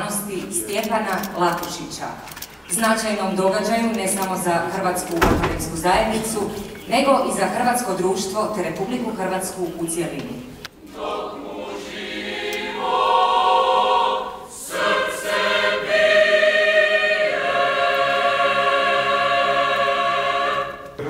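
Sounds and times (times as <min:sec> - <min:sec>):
choir singing held chords: 0:10.7 - 0:21.0.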